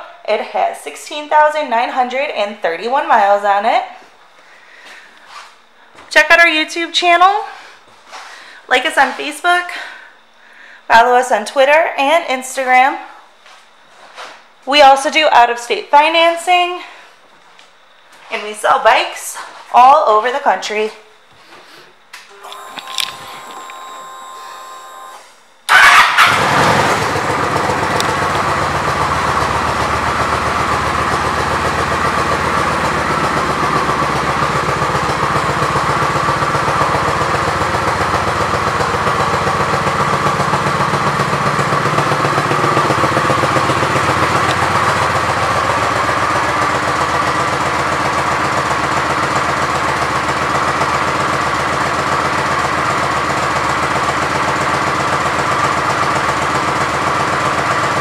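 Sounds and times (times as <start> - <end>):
motorcycle engine starting and idling: 22.3 - 58.0.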